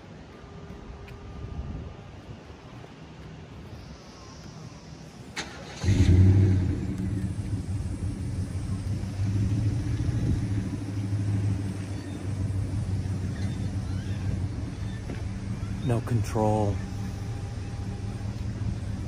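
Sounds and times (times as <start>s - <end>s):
vehicle engine starting and idling: 5.3s - 19.0s.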